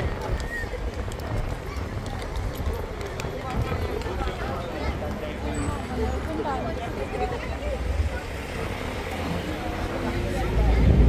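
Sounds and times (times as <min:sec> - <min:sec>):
passers-by talking: 0:00.0 - 0:11.0
steady low rumble: 0:10.4 - 0:11.0.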